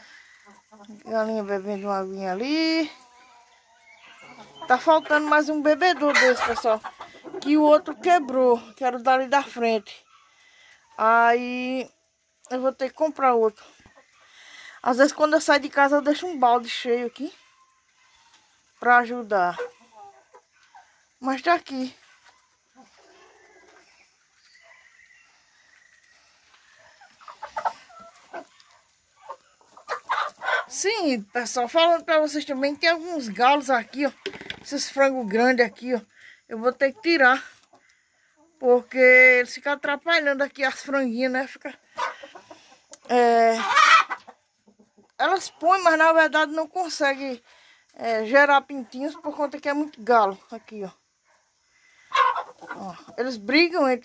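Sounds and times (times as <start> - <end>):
roosters scuffling: 0.0 - 9.8, 12.3 - 37.9, 40.4 - 50.6, 51.9 - 53.8
chickens clucking: 0.0 - 54.0
chicken squawking loudly: 43.6 - 44.4, 52.1 - 52.8.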